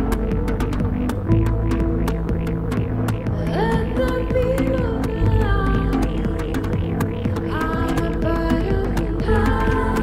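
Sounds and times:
low synthesizer bass drone: 0.0 - 10.0
ticking electronic beat: 0.0 - 10.0.

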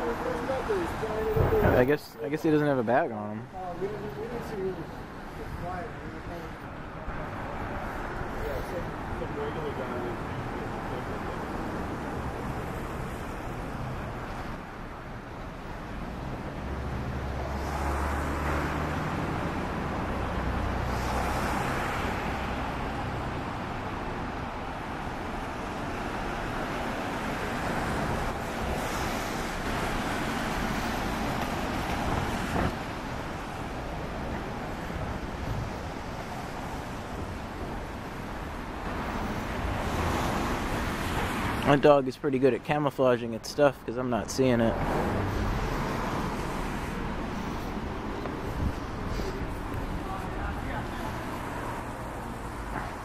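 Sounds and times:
road traffic: 0.0 - 53.0
vehicle passing: 43.9 - 53.0.

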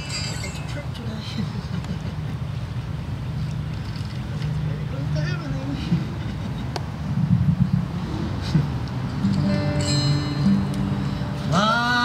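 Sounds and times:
wind rumble on microphone: 6.9 - 9.5.

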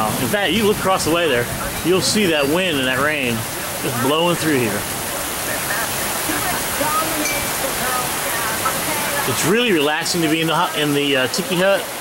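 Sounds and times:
heavy rain on open water: 0.0 - 12.0.

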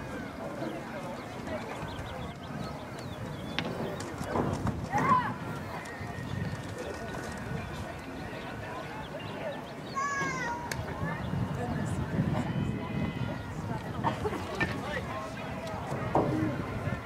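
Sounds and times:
people talking and calling out: 0.0 - 17.0.

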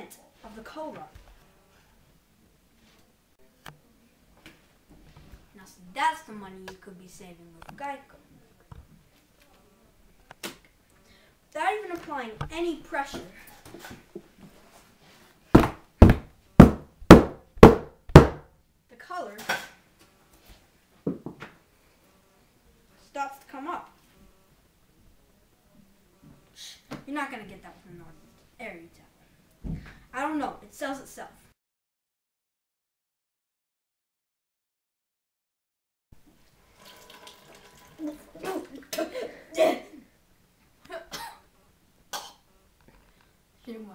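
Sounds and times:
hammer pounding on table: 15.6 - 18.5
liquid trickling: 36.6 - 38.9.

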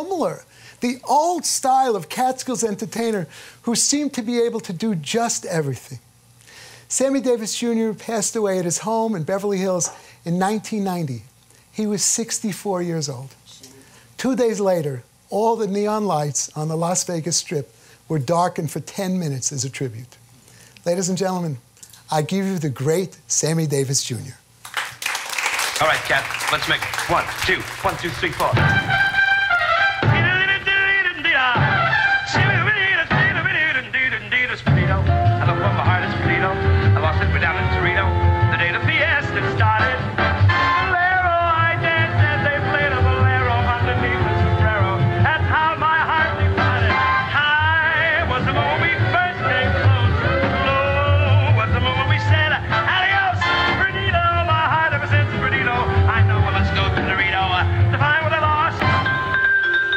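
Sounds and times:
brass band playing held notes: 25.8 - 31.0, 31.6 - 33.4, 35.0 - 43.1, 43.8 - 47.5, 52.2 - 54.2, 55.2 - 59.9
mallet keyboard notes: 59.0 - 59.9.

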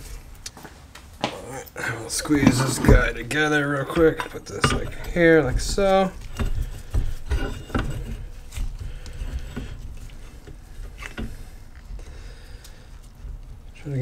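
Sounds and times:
light metal clicks and knocks: 2.2 - 12.0.

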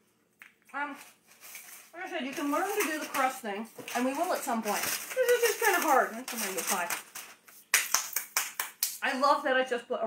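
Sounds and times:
aluminium foil crinkling: 0.8 - 8.5
hands clapping: 7.7 - 9.0.

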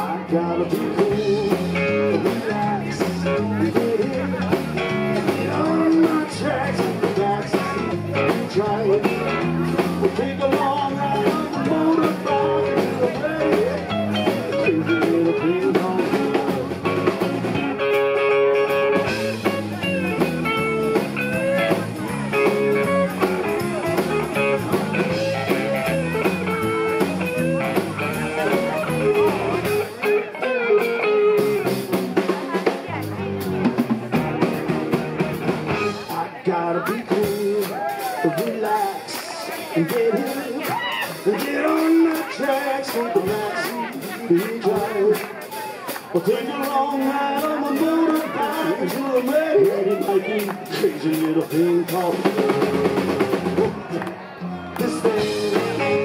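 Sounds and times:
bass guitar: 0.0 - 56.0
drum kit: 0.0 - 56.0
electric guitar: 0.0 - 56.0.

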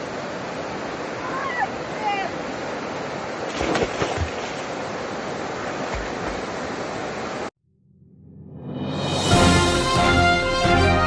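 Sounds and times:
rushing outdoor noise: 0.0 - 7.5
music: 8.0 - 11.0.

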